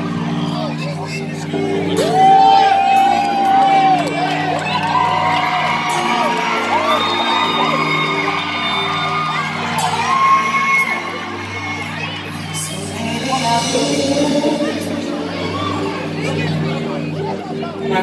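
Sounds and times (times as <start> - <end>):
audience whooping and screaming: 0.0 - 14.1
live band playing chords: 0.0 - 18.0.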